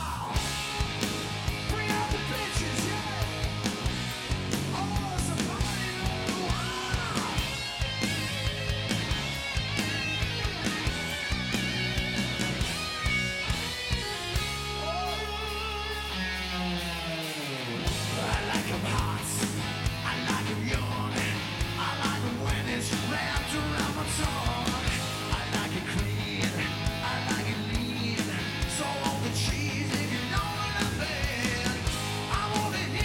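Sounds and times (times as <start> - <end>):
distorted electric guitar: 0.0 - 33.0
heavy metal band playing: 0.0 - 33.0.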